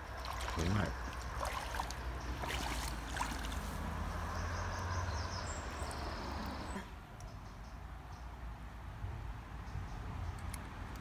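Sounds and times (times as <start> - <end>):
shallow stream running: 0.0 - 7.0.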